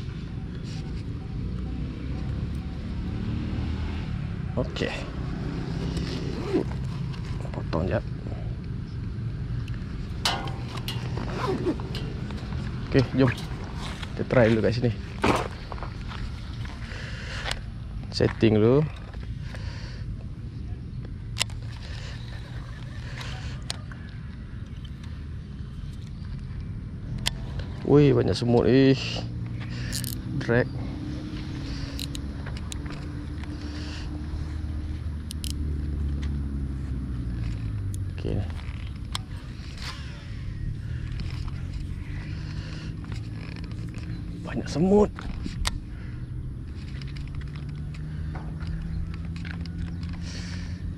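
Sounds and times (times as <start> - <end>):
low outdoor rumble: 3.8 - 50.9
fishing reel clicks: 29.9 - 30.2.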